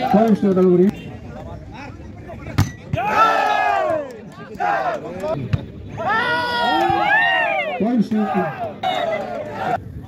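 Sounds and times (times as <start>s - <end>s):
spectators shouting: 2.9s - 5.4s, 6.0s - 9.8s.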